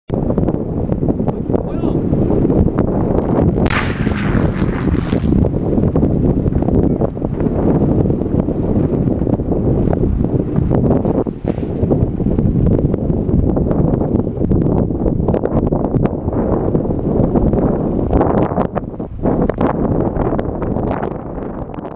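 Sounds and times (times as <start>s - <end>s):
wind buffeting microphone: 0.1s - 21.9s
distant demolition bang with rumble: 3.6s - 8.0s.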